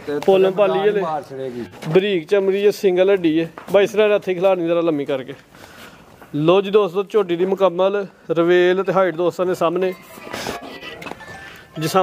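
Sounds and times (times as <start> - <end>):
man talking: 0.0 - 5.4, 6.3 - 10.6, 11.8 - 12.0.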